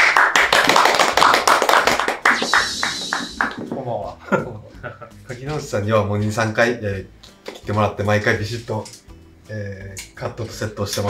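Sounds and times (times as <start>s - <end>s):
applause: 0.0s - 3.7s
music: 0.0s - 11.0s.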